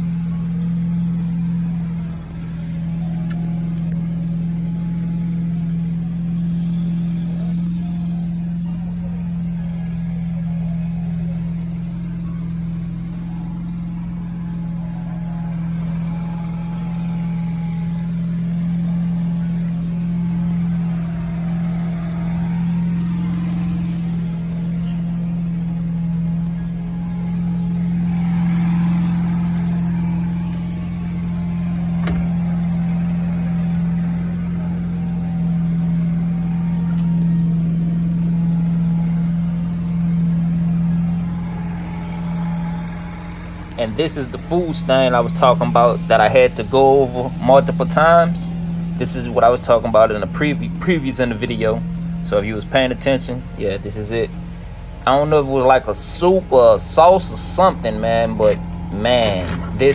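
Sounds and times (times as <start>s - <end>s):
motor droning: 0.0s - 59.9s.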